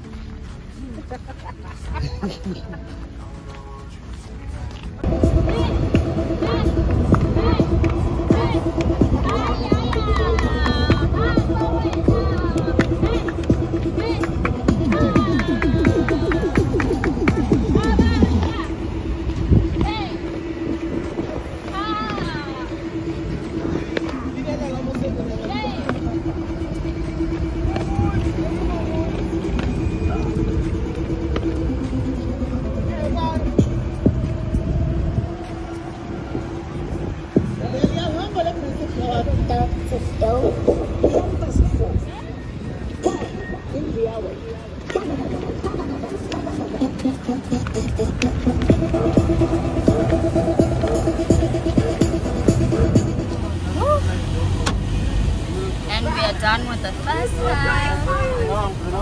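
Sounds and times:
road traffic: 0.0s - 59.0s
voices calling out: 0.8s - 59.0s.

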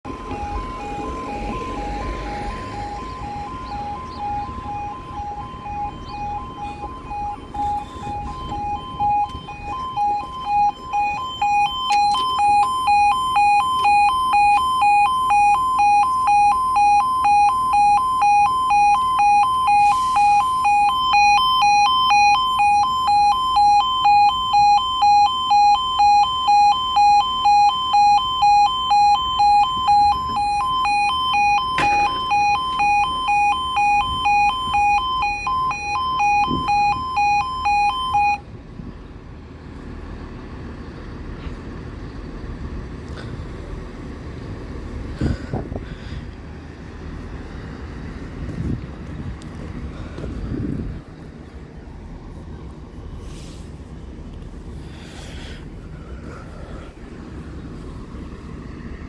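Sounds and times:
level crossing alarm: 0.0s - 38.5s.

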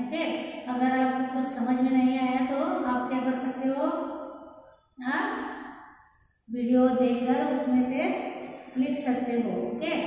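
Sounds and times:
woman speaking: 0.0s - 4.1s, 5.0s - 5.4s, 6.5s - 10.0s.

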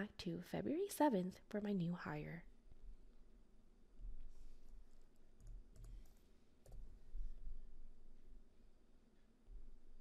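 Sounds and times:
faint keyboard keystrokes: 4.6s - 7.0s.

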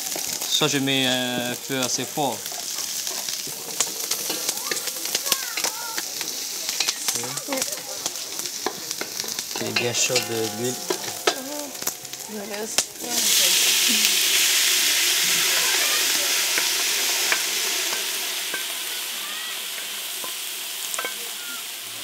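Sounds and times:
meat sizzling in hot oil: 0.0s - 22.0s.

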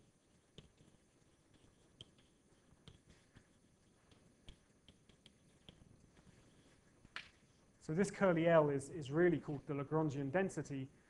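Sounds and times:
chalk tapping on blackboard: 0.1s - 7.4s.

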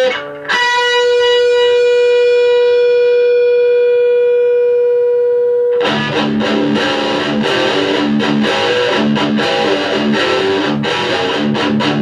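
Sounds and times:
electric guitar long note: 0.0s - 12.0s
strummed guitar chords: 0.0s - 12.0s.

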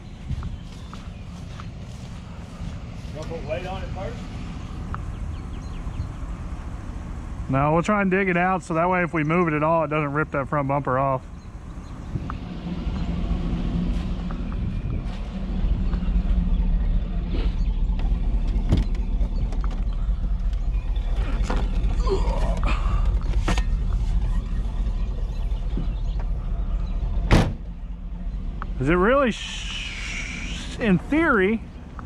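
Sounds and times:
engine idling: 0.0s - 32.0s.

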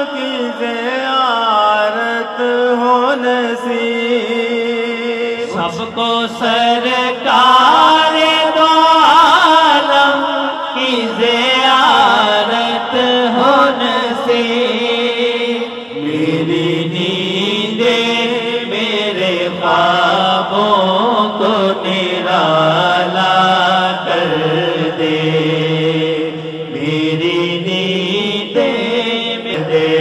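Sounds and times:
man singing into microphone: 0.0s - 30.0s.

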